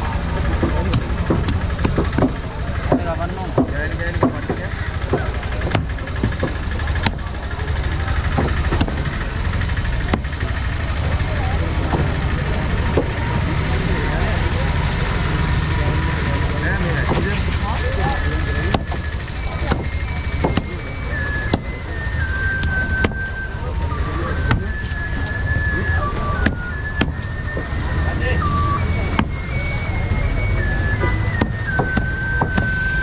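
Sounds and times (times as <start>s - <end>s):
high electronic notes: 0.0s - 33.0s
low engine rumble: 0.0s - 33.0s
knife chopping on wooden board: 0.6s - 3.0s, 8.4s - 9.0s, 19.7s - 20.7s, 26.4s - 27.3s, 31.4s - 32.8s.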